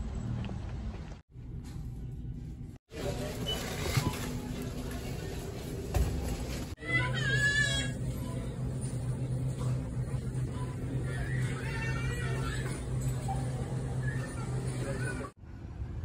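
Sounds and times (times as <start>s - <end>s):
steady store hum: 0.0s - 16.0s
shopping cart being pushed: 2.9s - 6.8s.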